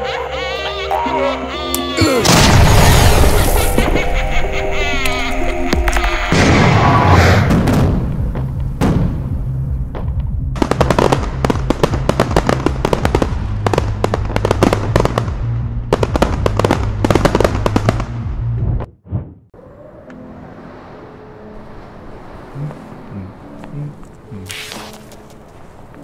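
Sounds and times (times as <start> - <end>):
fireworks burst: 2.3 - 4.1
steady low rumble: 4.0 - 18.9
fireworks crackling pops: 9.9 - 18.2.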